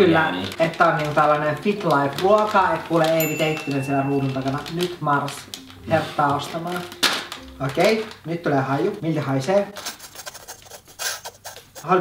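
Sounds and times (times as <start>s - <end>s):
plastic bag crinkling: 0.0s - 11.8s.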